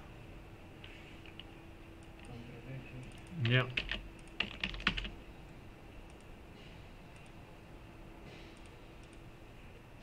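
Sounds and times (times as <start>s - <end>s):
computer keyboard typing: 3.0s - 5.2s.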